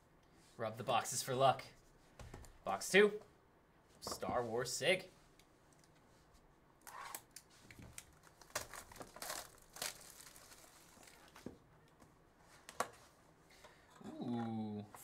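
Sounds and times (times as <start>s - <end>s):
plastic shrink-wrap crinkling: 7.6s - 11.4s.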